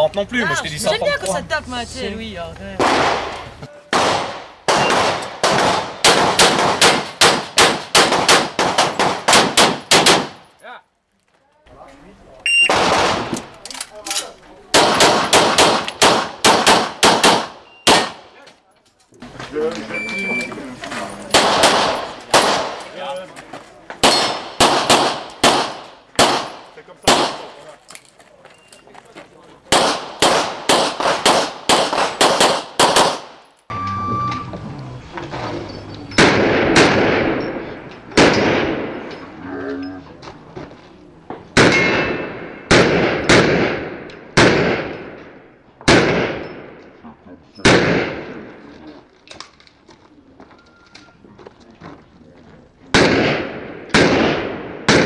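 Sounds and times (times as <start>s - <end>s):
pistol shots: 2.8s - 10.5s, 12.6s - 13.5s, 14.7s - 18.3s, 21.3s - 22.9s, 24.0s - 27.6s, 29.7s - 33.4s, 36.1s - 39.1s, 41.6s - 46.8s, 47.6s - 48.6s, 52.9s - 55.0s.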